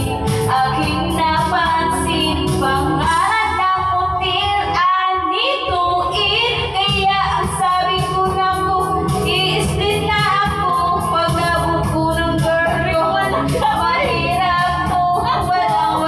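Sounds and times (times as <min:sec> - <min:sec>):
backing track with steady beat: 0:00.0 - 0:16.0
woman singing karaoke: 0:00.0 - 0:16.0.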